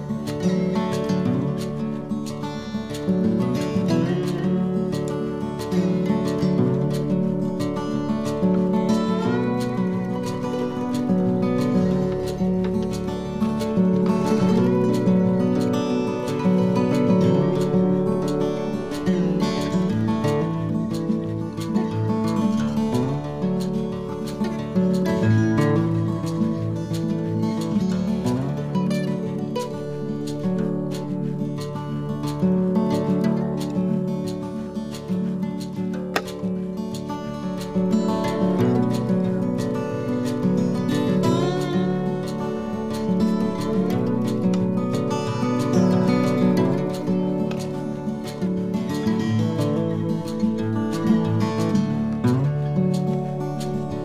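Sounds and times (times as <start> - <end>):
acoustic guitar music: 0.0 - 54.0.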